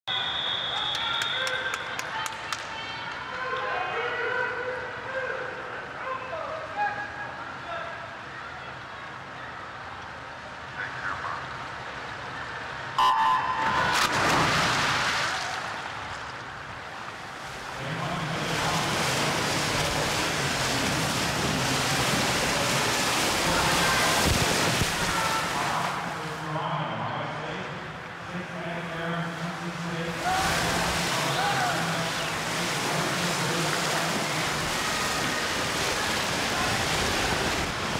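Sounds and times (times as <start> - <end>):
crowd cheering: 0.0 - 4.6, 21.8 - 26.1, 29.9 - 37.8
water splashing: 13.3 - 26.5, 29.2 - 37.9.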